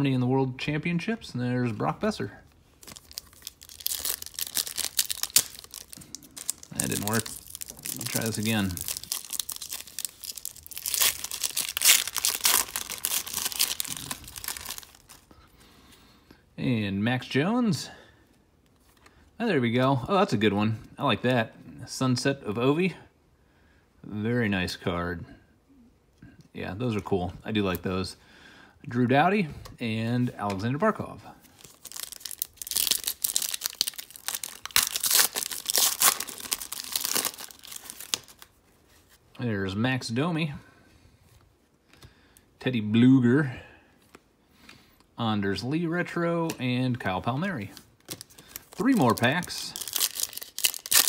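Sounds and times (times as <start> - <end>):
foil wrapper tearing and crinkling: 2.8 - 15.2, 31.6 - 38.5, 48.0 - 51.0.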